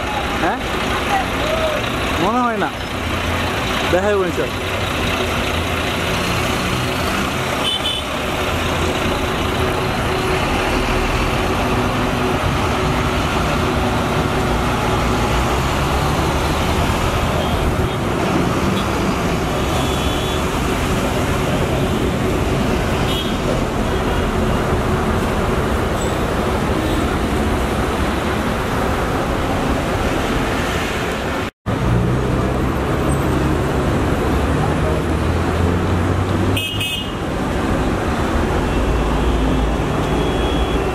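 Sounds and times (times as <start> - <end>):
bus diesel engine pulling away: 0.0 - 19.8
highway traffic: 0.0 - 40.9.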